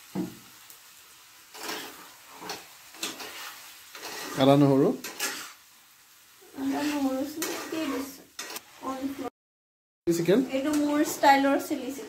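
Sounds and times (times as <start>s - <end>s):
spatula scraping a wok: 1.4s - 5.8s, 6.4s - 9.3s, 10.4s - 12.0s.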